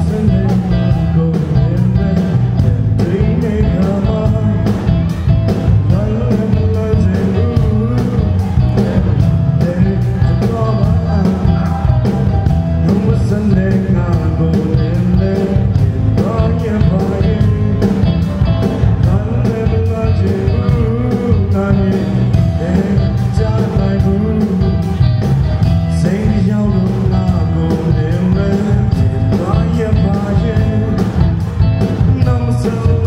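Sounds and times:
live band playing: 0.0 - 33.0
man singing into a microphone: 0.0 - 33.0
steady drum beat: 0.0 - 33.0.

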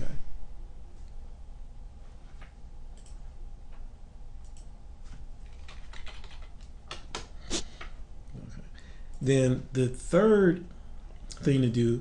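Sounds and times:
computer keyboard typing: 5.4 - 7.2.

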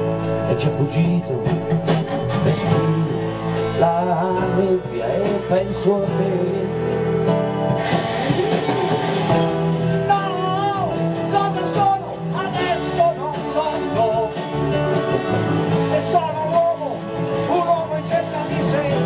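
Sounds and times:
acoustic guitar accompaniment: 0.0 - 19.0
bending lead melody: 0.0 - 19.0.

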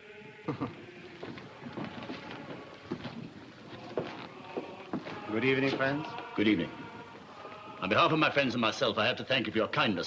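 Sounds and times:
people laughing: 0.5 - 1.0.

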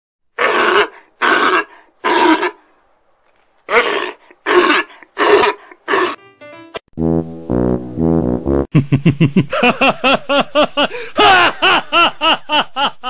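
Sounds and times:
harsh rasping cry: 0.4 - 2.6, 3.7 - 6.2.

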